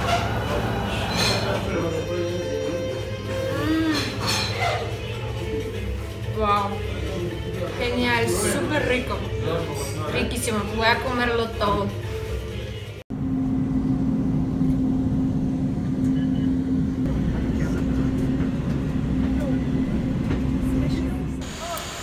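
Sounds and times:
vehicle interior drone: 13.1s - 21.4s.

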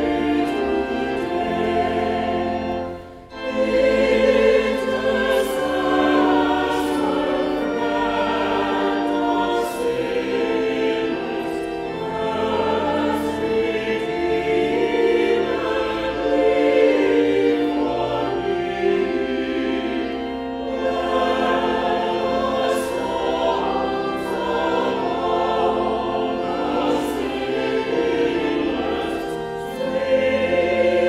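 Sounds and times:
women's choir singing a hymn: 0.0s - 31.0s.

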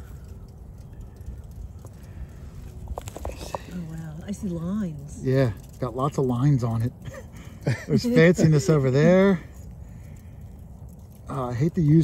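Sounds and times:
wind rumble on microphone: 0.0s - 6.4s.

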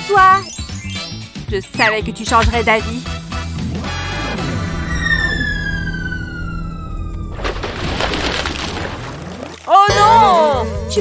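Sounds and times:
background music: 0.0s - 7.3s, 9.7s - 11.0s
splashing crash: 4.4s - 9.7s
falling whistle glide: 4.5s - 7.4s.

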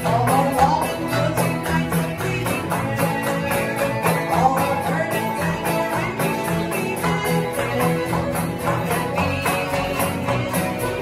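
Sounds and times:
acoustic guitars: 0.0s - 11.0s
upright bass: 0.0s - 11.0s.

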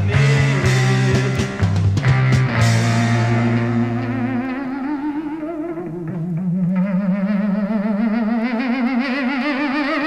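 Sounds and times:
distorted electric guitar note: 0.0s - 10.0s.

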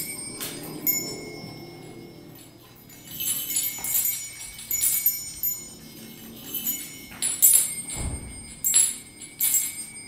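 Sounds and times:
bright metallic jingling: 0.0s - 10.0s.

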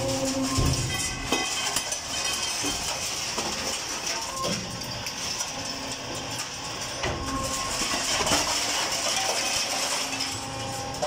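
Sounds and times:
steel conveyor clattering: 0.0s - 11.0s.

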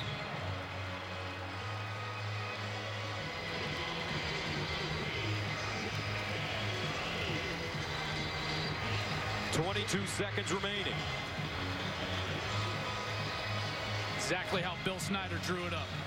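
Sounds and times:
stadium crowd noise: 0.0s - 16.0s.

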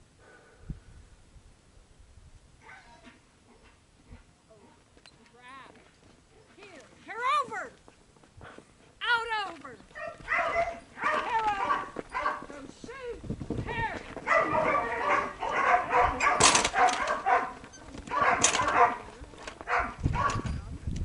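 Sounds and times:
dog barking and yipping: 9.9s - 12.5s, 14.2s - 20.5s.

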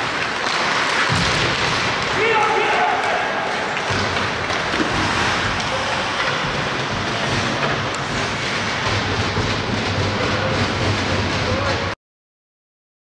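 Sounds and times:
ice hockey play rumbling: 0.0s - 12.0s
skates on ice: 0.0s - 12.0s.

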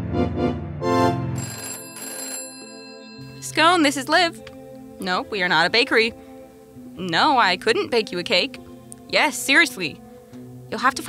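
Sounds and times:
organ-like keyboard music: 0.0s - 9.1s
telephone ringing: 1.4s - 6.0s.

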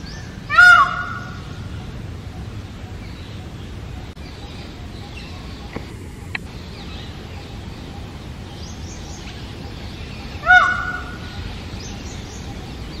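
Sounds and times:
peacock call: 0.0s - 1.5s, 10.2s - 11.6s.

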